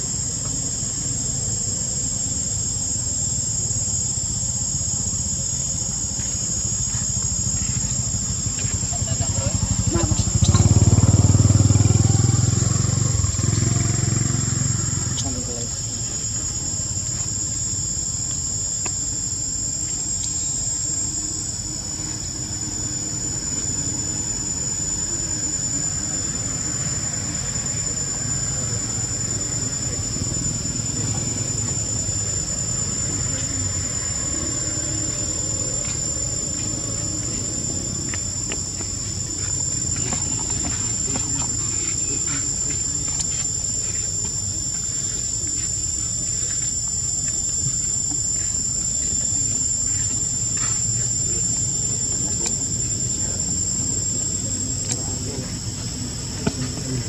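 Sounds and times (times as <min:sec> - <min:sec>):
forest insects droning: 0:00.0 - 0:57.0.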